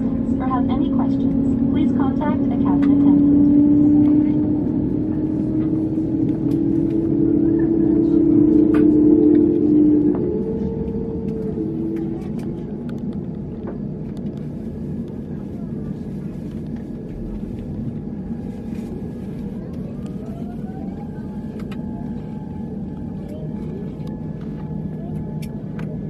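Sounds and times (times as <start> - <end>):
loud hum: 0.0 - 15.7
aircraft cabin rumble: 0.0 - 26.0
whine rising in pitch: 1.0 - 13.6.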